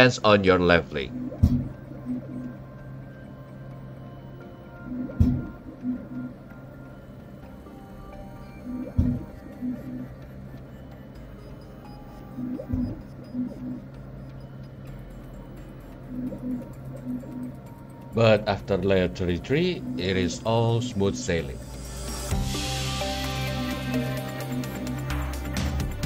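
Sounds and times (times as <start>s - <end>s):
lift motor notes: 0.0s - 26.0s.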